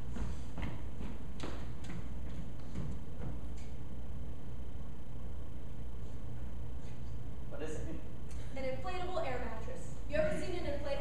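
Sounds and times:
footsteps on stage floor: 0:00.0 - 0:03.8
low hum: 0:00.0 - 0:11.0.

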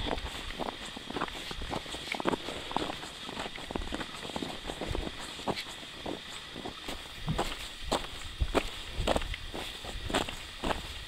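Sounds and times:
footsteps in shallow snow: 0:00.0 - 0:11.0.

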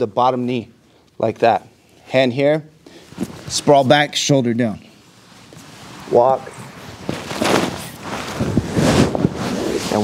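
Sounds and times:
cloth rustling against microphone: 0:02.9 - 0:04.0, 0:04.9 - 0:10.0.

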